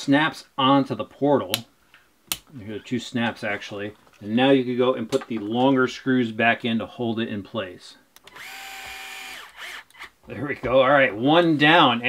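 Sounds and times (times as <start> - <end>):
power driver motor whine: 8.3 - 10.1.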